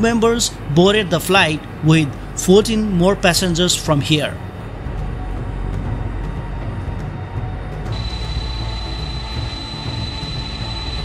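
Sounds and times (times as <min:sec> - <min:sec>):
jet engines rumbling: 0:00.0 - 0:05.8
high engine whine: 0:00.0 - 0:11.0.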